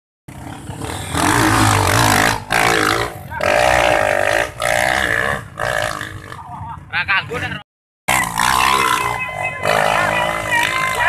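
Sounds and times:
motorcycle engine revving: 0.3 - 7.4, 8.1 - 11.0.

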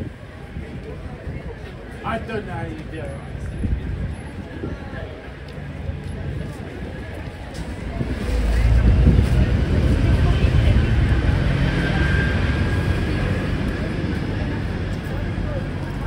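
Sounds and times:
passing vehicle engine rumble: 3.2 - 16.0.

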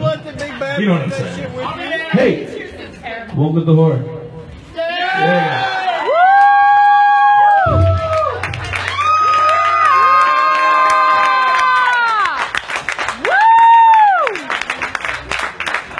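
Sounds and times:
audience cheering and shouting: 4.7 - 12.4, 13.2 - 14.5
audience clapping: 6.1 - 15.9.

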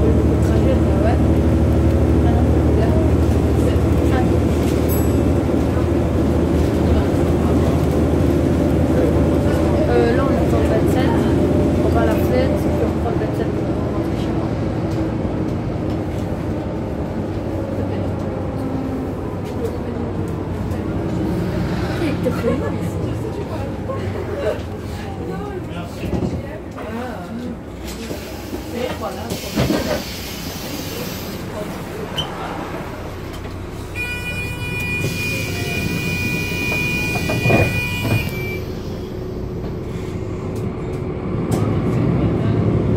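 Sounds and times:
bus engine and road rumble: 0.0 - 42.9.

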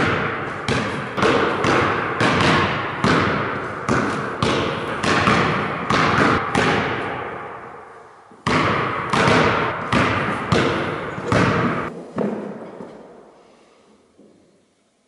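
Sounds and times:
basketball bouncing on wooden floor: 0.0 - 7.4, 8.4 - 12.6.

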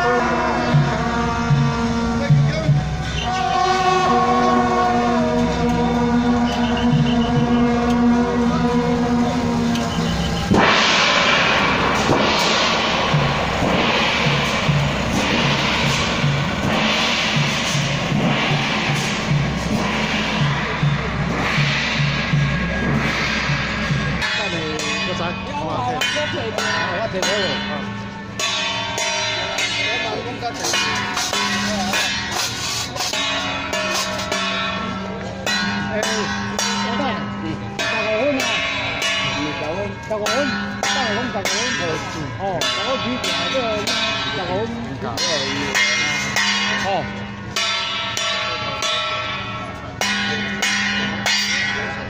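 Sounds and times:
brass band sustained notes: 0.0 - 49.0
crashing cymbals and gongs: 0.0 - 52.0
regular drum beat: 8.6 - 52.0.

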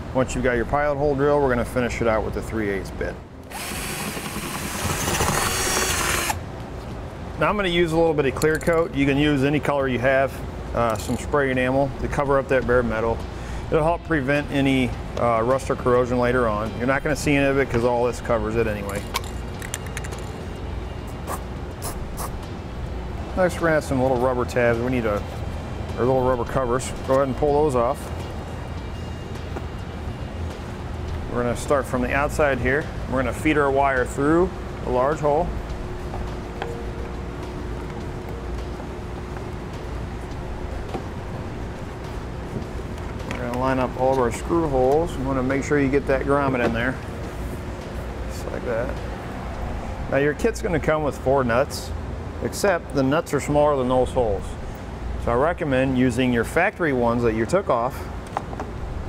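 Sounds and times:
low background hum: 0.0 - 59.0
cordless drill boring metal: 3.5 - 6.4.

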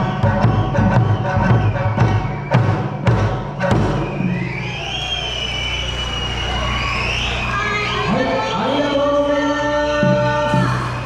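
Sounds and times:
drum and lute music: 0.0 - 4.4
crowd noise: 0.0 - 11.0
long high finger whistle: 0.1 - 3.0, 3.9 - 8.1.

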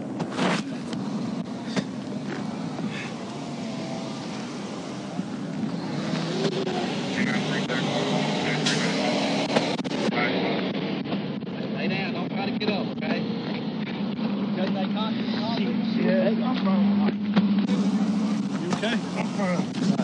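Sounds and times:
truck passing alongside: 0.0 - 11.5, 12.8 - 20.0
highway traffic rumble: 0.0 - 20.0.

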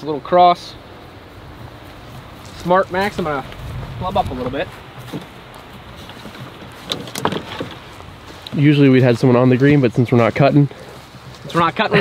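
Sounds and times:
faint outdoor noise: 0.0 - 12.0.

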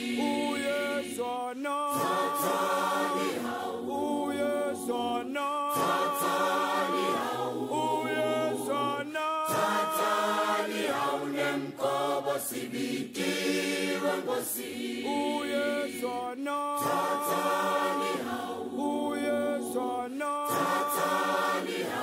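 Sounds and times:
a cappella choir singing: 0.0 - 22.0.

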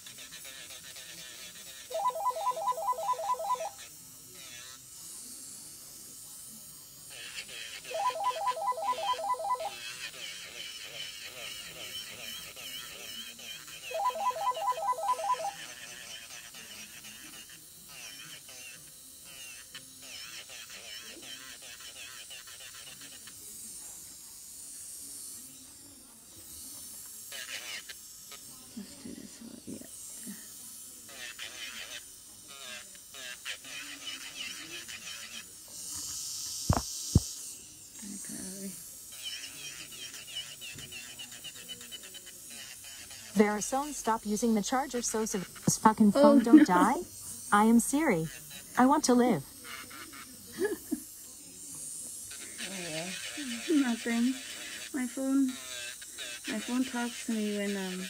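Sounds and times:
people talking: 1.9 - 3.7, 7.9 - 9.7, 13.9 - 15.5, 43.4 - 49.5, 52.6 - 54.4, 56.5 - 58.0
phone ringtone rapid beeping: 1.9 - 3.8, 8.0 - 9.7, 13.9 - 15.6.

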